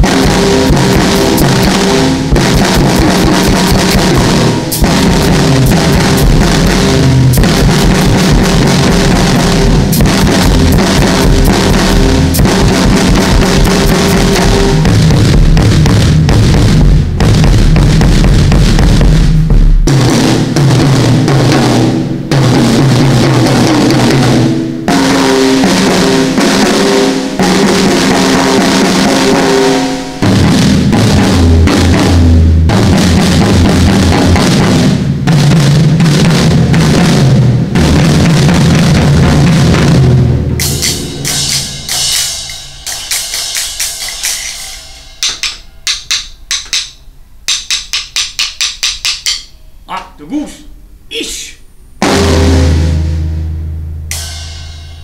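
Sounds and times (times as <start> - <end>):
drum kit played with sticks: 0.0 - 55.0.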